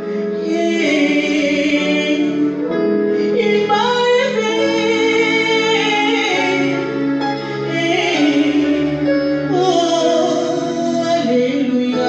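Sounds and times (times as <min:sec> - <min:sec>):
woman singing gospel song: 0:00.0 - 0:12.0.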